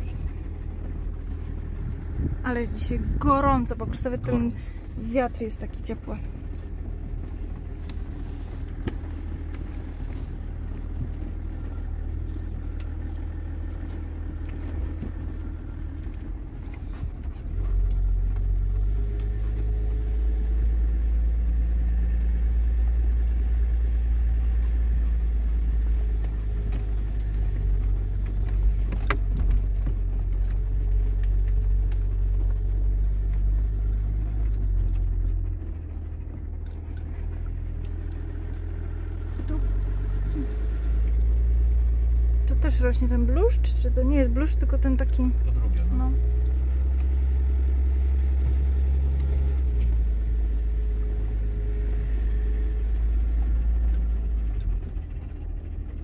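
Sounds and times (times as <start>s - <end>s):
car rumbling on dirt track: 0.0s - 56.0s
light clicks and rattles: 0.0s - 56.0s.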